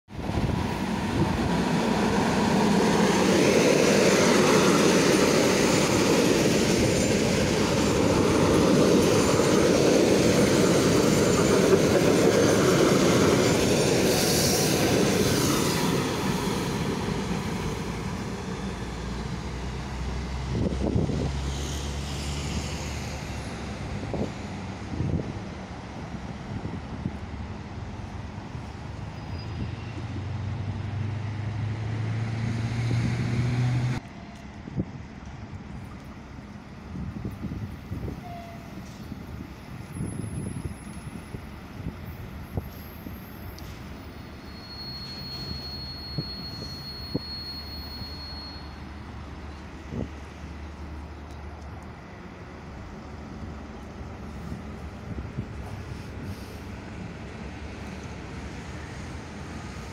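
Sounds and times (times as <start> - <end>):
train wheels rumbling: 0.2 - 59.9
high wheel squeal: 29.0 - 30.1, 42.2 - 49.0.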